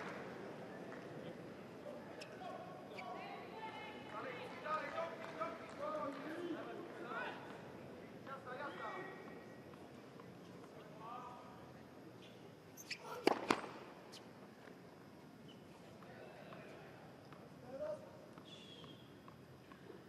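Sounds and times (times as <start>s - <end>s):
faint crowd voices: 0.0s - 20.0s
tennis ball bouncing on court: 13.1s - 13.8s.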